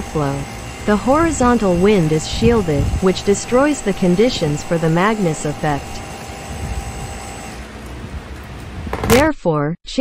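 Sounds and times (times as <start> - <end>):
faint motor whine: 0.0 - 8.9
rush of air from electric fans: 0.0 - 9.0
low rumble: 0.8 - 3.7.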